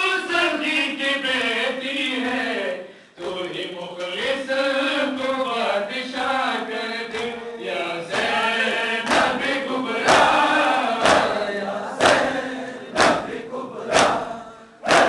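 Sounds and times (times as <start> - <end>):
men chanting in unison: 0.0 - 15.0
hands beating chests: 9.0 - 11.4, 12.0 - 15.0.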